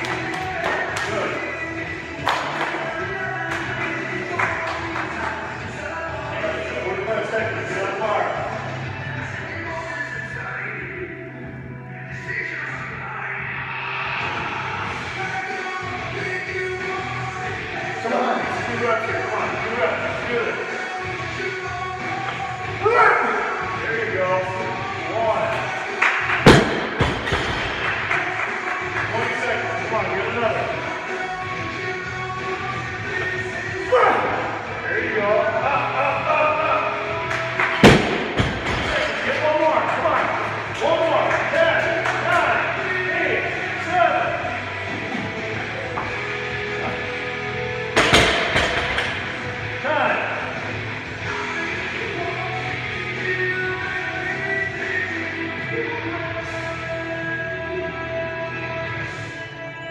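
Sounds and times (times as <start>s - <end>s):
music with singing: 0.0s - 59.9s.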